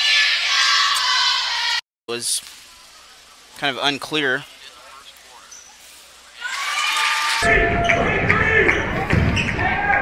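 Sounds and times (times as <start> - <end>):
crowd and player voices: 0.0 - 10.0.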